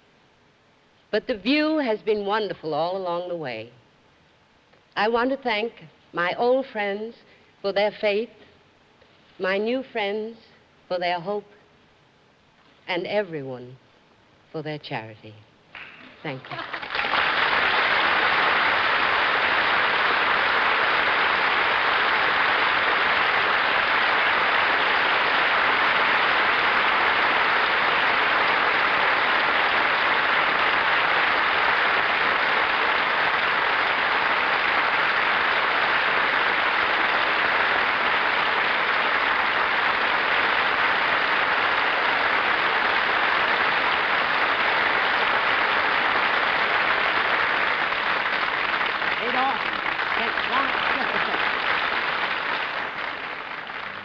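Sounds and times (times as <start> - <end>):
audience applause: 15.8 - 54.0.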